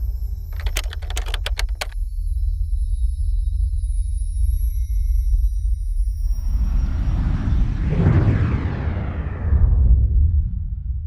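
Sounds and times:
keystroke clicks: 0.5 - 2.0.

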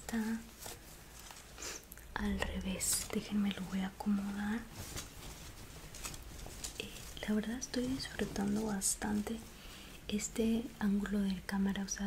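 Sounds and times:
fabric rustling: 0.0 - 10.7.

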